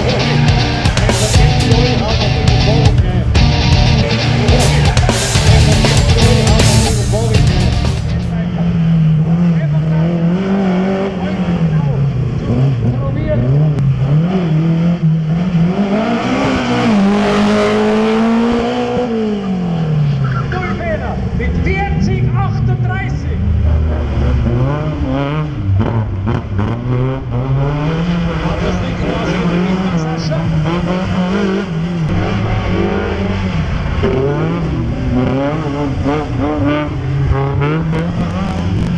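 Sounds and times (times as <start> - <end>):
race car engines revving: 0.0 - 38.9.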